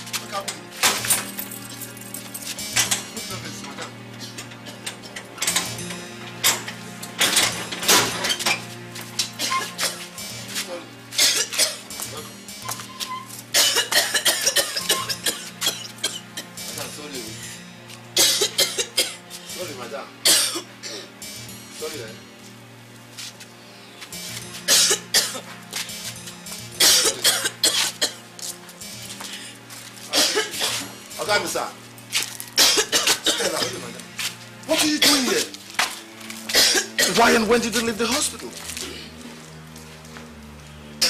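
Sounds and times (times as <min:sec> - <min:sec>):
background music with low drone: 0:00.0 - 0:41.0
metal gate clanking: 0:00.1 - 0:10.5
woman coughing violently: 0:09.4 - 0:10.1, 0:11.2 - 0:11.9, 0:13.5 - 0:16.6, 0:18.2 - 0:19.3, 0:20.2 - 0:21.1, 0:24.7 - 0:25.5, 0:26.8 - 0:28.2, 0:30.1 - 0:30.9, 0:32.6 - 0:33.9, 0:34.7 - 0:35.5, 0:36.5 - 0:37.4.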